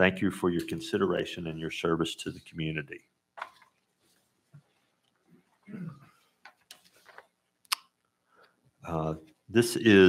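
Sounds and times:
paper rustling: 3.4s - 4.9s, 6.2s - 7.4s.

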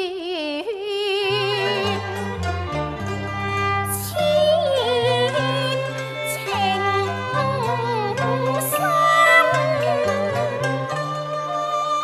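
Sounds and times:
woman singing opera: 0.0s - 2.2s, 3.4s - 12.0s
instrumental accompaniment: 1.2s - 12.0s.

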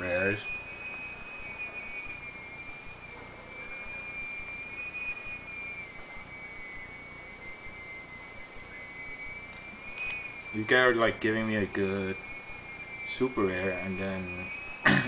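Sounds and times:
faint background hiss: 0.0s - 15.0s
high-pitched whine: 0.0s - 15.0s.

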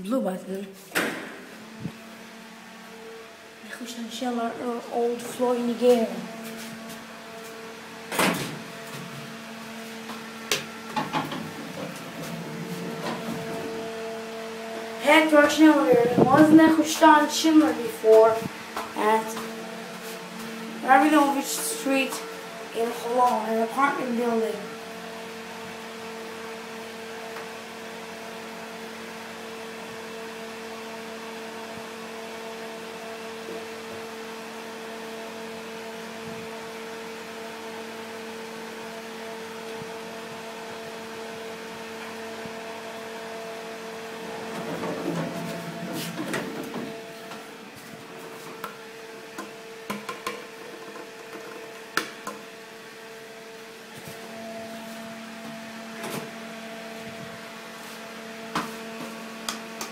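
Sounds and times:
elevator hum: 1.2s - 27.4s, 38.8s - 49.9s
elevator rumbling: 11.0s - 14.0s, 44.1s - 48.4s.

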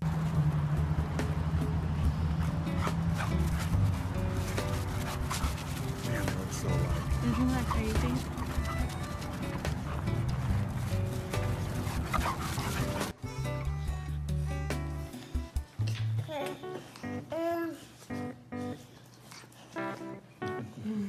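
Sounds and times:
steady low notes: 0.0s - 15.0s
background music: 0.0s - 18.8s
dog vocal sounds: 2.3s - 13.2s.

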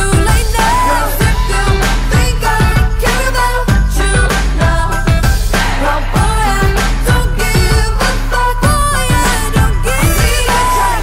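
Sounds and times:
kick-drum beat: 0.0s - 10.7s
pop song with sung vocal: 0.0s - 11.0s.

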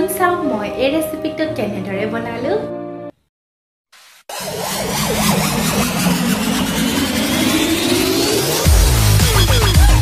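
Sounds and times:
turbocharger whine spooling up: 4.0s - 10.0s
dense rushing noise: 4.1s - 9.1s.

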